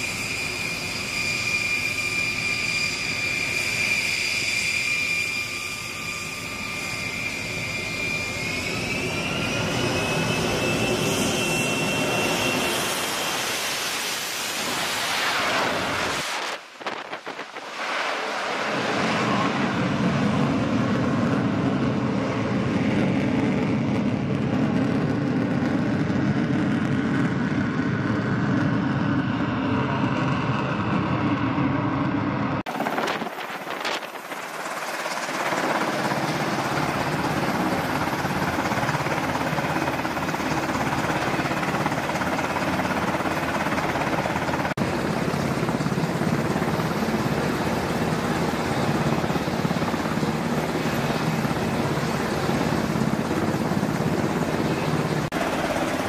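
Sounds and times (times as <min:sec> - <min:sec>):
aircraft engine noise: 0:00.0 - 0:56.0
helicopter rotors and turbine: 0:00.0 - 0:56.0.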